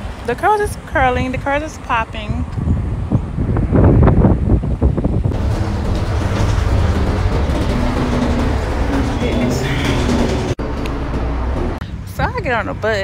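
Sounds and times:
bus engine and road rumble: 0:00.0 - 0:13.0
bus cabin drone: 0:02.5 - 0:13.0.

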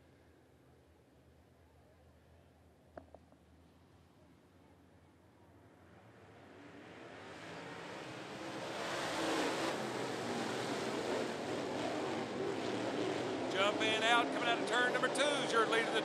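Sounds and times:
race car engines passing: 0:05.8 - 0:16.0.

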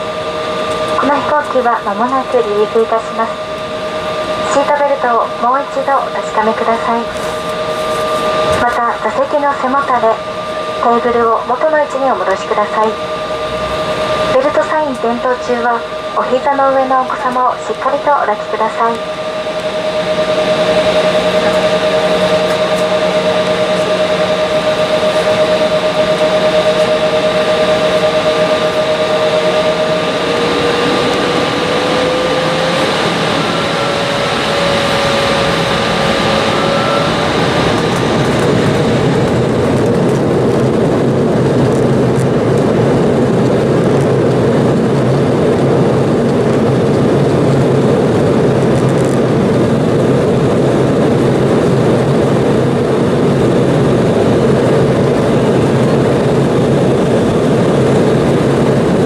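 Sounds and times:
jet engine rumble: 0:00.0 - 0:59.0
jet engine whine: 0:00.0 - 0:59.0.

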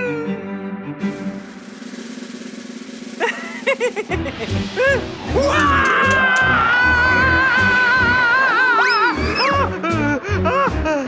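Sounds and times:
cartoon music: 0:03.2 - 0:10.2
cartoon character wavering scream: 0:05.4 - 0:09.6.

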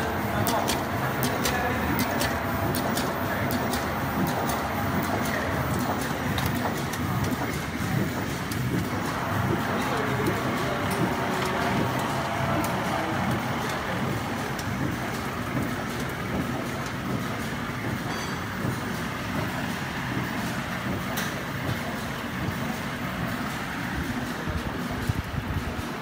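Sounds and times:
machine running: 0:00.0 - 0:26.0.

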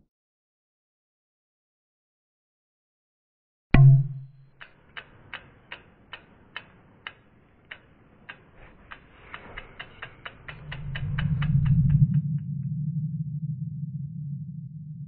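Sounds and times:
sharp ticks: 0:04.3 - 0:12.5
low rumble: 0:08.8 - 0:15.0.

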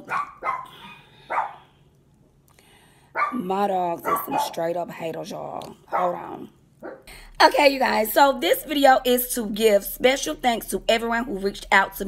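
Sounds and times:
dog barking: 0:00.0 - 0:01.7, 0:03.1 - 0:03.4, 0:04.0 - 0:04.7, 0:05.9 - 0:06.2, 0:06.8 - 0:07.1.

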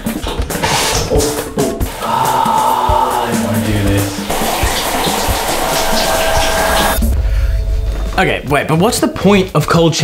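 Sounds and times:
background music: 0:00.0 - 0:10.0
shower spray hissing: 0:01.9 - 0:07.0
low rumble: 0:06.4 - 0:09.2.

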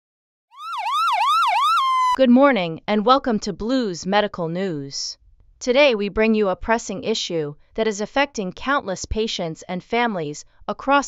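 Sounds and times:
electronic siren wailing: 0:00.5 - 0:02.2.

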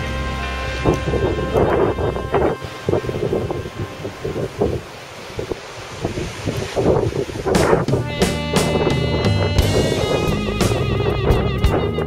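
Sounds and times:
ocean surf: 0:00.0 - 0:12.0
wind buffeting microphone: 0:00.0 - 0:12.0.

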